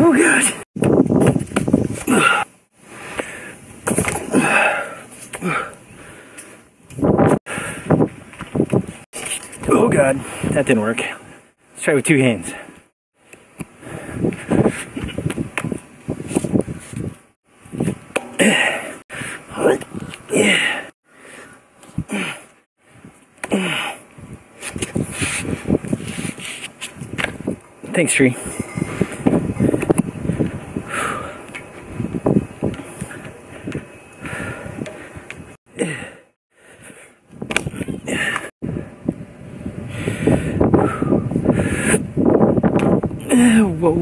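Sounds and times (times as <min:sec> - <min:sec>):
grunts of effort: 0:02.0 - 0:02.5, 0:04.2 - 0:05.8, 0:18.4 - 0:20.9, 0:22.0 - 0:22.5, 0:23.4 - 0:24.0, 0:35.8 - 0:36.3
hard breathing: 0:02.0 - 0:03.6, 0:04.2 - 0:06.7, 0:13.7 - 0:15.3, 0:18.4 - 0:22.7, 0:28.4 - 0:31.6, 0:32.8 - 0:37.2, 0:37.8 - 0:38.8, 0:39.8 - 0:42.1
rustling of body movement: 0:24.5 - 0:27.6.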